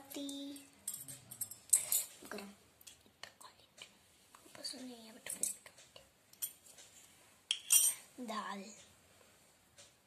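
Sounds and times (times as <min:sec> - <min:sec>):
small spoon clinking on steel dishes: 0:00.3 - 0:02.2, 0:06.3 - 0:06.7, 0:07.5 - 0:08.0.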